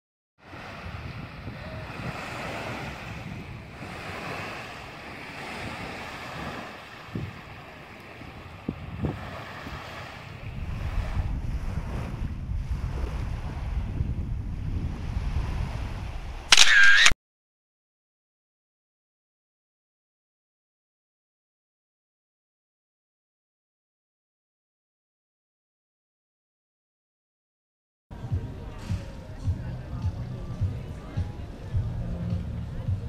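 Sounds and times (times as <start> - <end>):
small waves washing onto sand: 0.4 - 16.5
wind on microphone: 0.4 - 16.5
camera shutter sound effect: 16.5 - 17.2.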